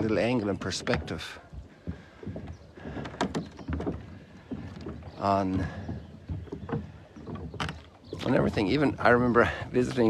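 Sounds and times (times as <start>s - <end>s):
footsteps on plastic dock: 0.0s - 10.0s
water moving against floats: 0.0s - 10.0s.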